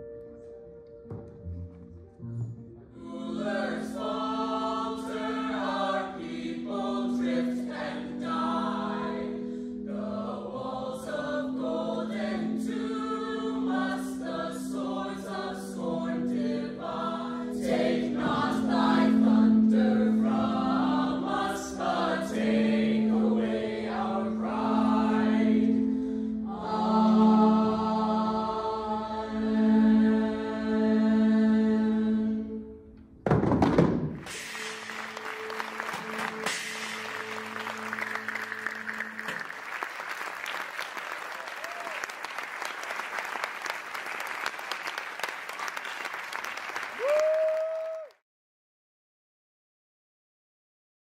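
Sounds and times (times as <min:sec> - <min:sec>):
voices singing in chorus: 0:03.0 - 0:32.6.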